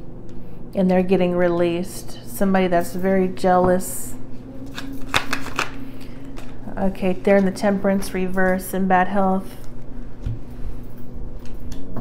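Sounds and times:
cards being shuffled: 0:04.7 - 0:06.6.

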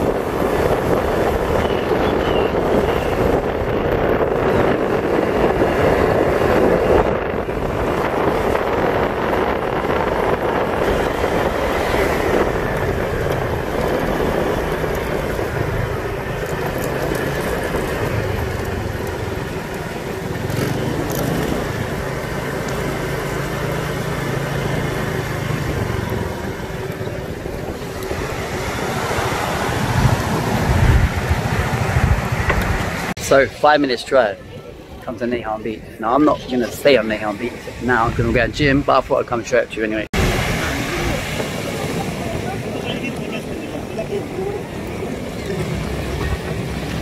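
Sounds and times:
motor scooter engine humming: 0:00.0 - 0:33.2, 0:40.2 - 0:47.0
road and air noise: 0:00.0 - 0:47.0
wind noise on microphone: 0:00.0 - 0:47.0
small waves breaking on sand: 0:27.8 - 0:33.2, 0:40.2 - 0:47.0.

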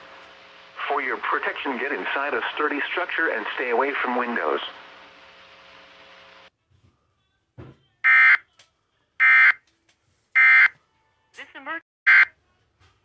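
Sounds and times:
buzzy electronic alert beeps: 0:09.2 - 0:09.6, 0:10.4 - 0:10.7.

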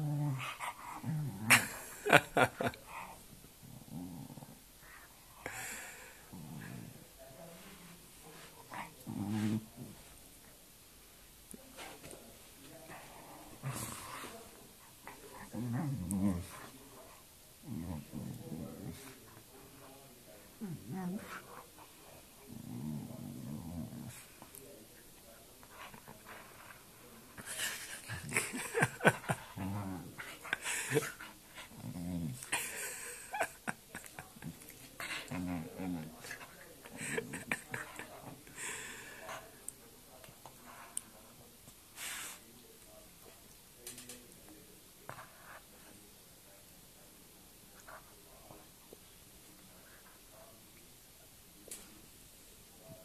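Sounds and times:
dog growling: 0:00.0 - 0:02.2, 0:03.6 - 0:04.6, 0:06.2 - 0:07.0, 0:08.7 - 0:10.0, 0:15.1 - 0:16.7, 0:17.6 - 0:19.2, 0:22.5 - 0:24.2, 0:27.4 - 0:32.6, 0:34.4 - 0:38.4.

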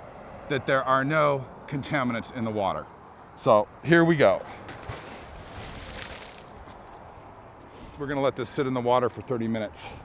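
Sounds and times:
low steady outdoor hiss: 0:00.0 - 0:10.0.

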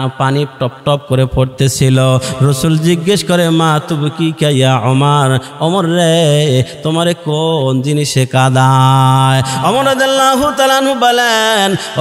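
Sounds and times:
man chanting a sermon: 0:00.0 - 0:12.0.

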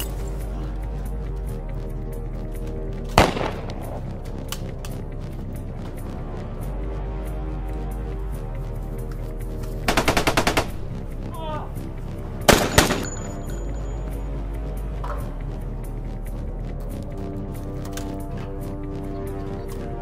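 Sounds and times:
background music: 0:00.0 - 0:20.0
gunshots: 0:03.2 - 0:04.1, 0:12.5 - 0:13.2.

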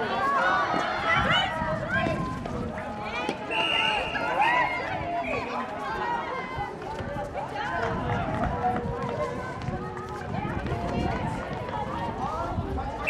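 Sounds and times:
running footsteps on hard court: 0:06.0 - 0:12.6.

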